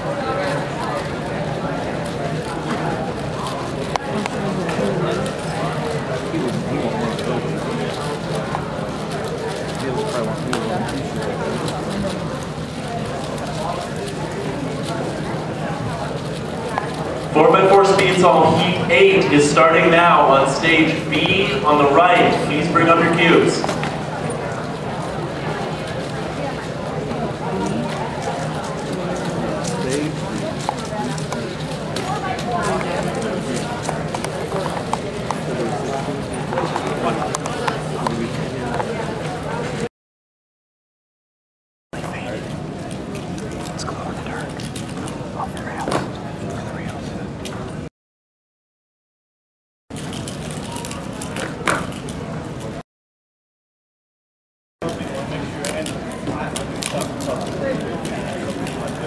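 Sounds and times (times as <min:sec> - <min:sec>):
crowd chatter: 0:00.0 - 0:39.9, 0:42.0 - 0:47.9, 0:50.0 - 0:52.8, 0:54.8 - 0:59.0.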